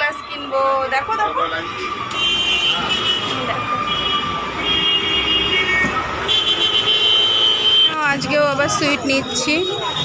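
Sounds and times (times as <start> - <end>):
busy street traffic: 0.0 - 10.0.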